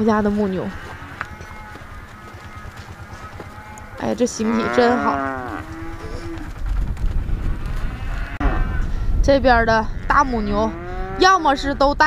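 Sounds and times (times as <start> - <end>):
low rumble: 0.0 - 12.0
cow mooing: 0.1 - 6.5, 7.6 - 8.9, 10.0 - 12.0.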